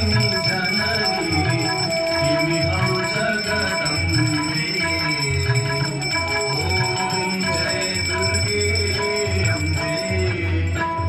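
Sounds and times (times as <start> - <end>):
bell ringing: 0.0 - 11.0
devotional music: 0.0 - 11.0.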